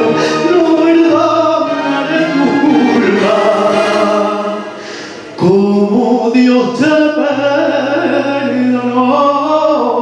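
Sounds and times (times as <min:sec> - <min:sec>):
man singing a long held note: 0:00.4 - 0:10.0.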